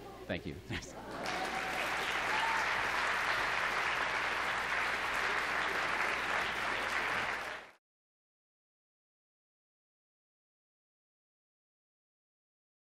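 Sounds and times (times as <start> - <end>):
audience applause: 1.0 - 7.8.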